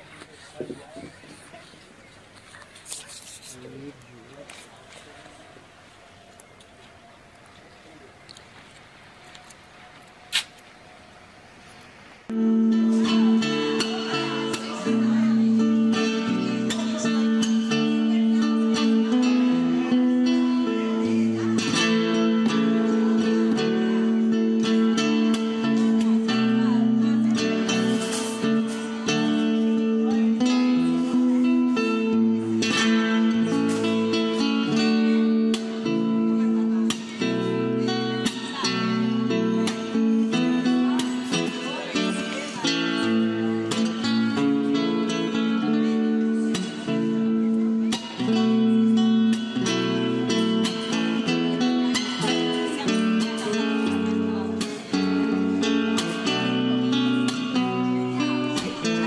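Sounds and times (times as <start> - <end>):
plucked guitar music: 12.3 - 59.0.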